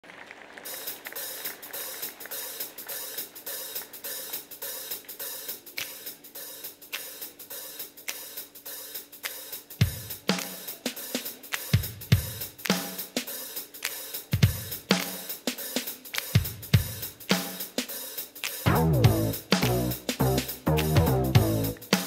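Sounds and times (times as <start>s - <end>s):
hi-hat pattern: 1.7s - 22.0s
heavy low drum hits: 18.7s - 21.8s.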